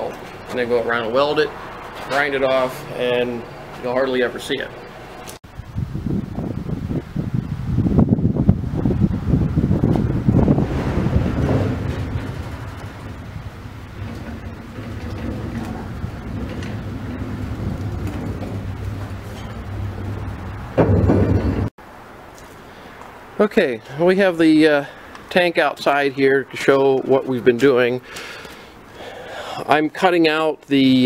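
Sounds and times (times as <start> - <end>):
rail car rumbling: 9.9 - 21.7.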